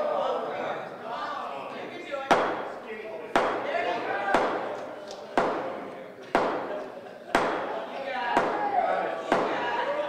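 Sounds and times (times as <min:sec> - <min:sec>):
faint murmur of voices: 0:00.0 - 0:10.0
sharp echoing knocks: 0:02.3 - 0:03.7, 0:04.3 - 0:04.8, 0:05.4 - 0:07.8, 0:08.4 - 0:09.7.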